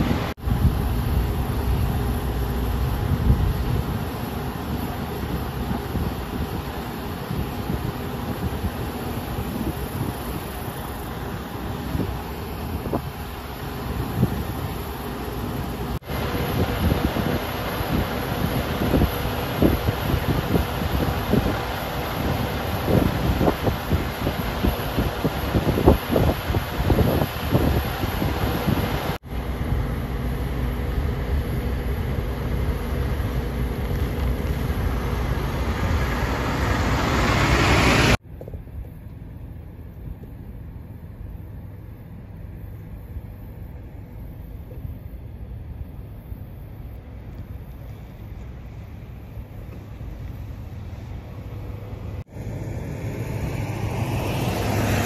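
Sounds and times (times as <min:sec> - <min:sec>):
wind buffeting microphone: 0:00.0 - 0:38.8
vehicle engine: 0:00.0 - 0:55.0.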